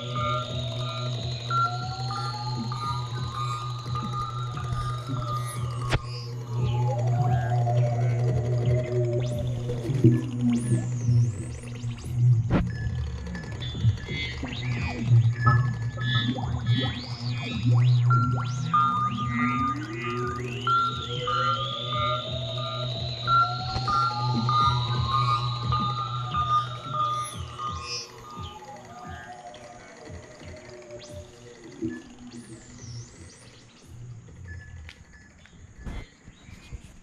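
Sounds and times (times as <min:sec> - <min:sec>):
pulsing synth note: 0:00.0 - 0:36.0
wavering high tone: 0:00.0 - 0:36.0
synthesizer low drone: 0:00.0 - 0:37.0.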